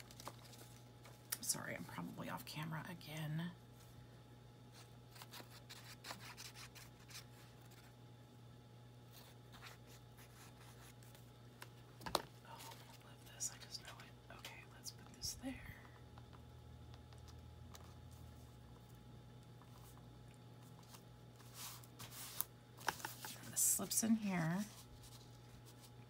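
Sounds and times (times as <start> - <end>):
paper rustling: 0.0 - 1.2, 20.6 - 26.0
steady low hum: 0.0 - 26.0.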